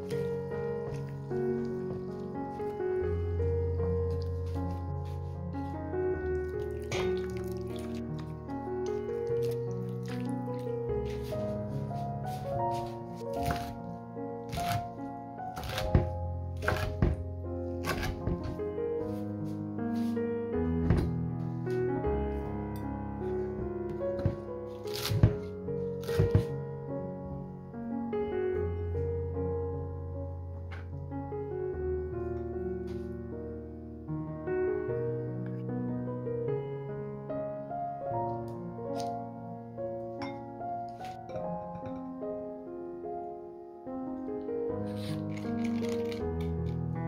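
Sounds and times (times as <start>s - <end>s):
background music: 0.0s - 34.1s
knife chopping on cutting board: 13.3s - 13.7s, 14.5s - 14.9s, 15.6s - 17.2s, 17.8s - 18.6s, 24.2s - 26.5s.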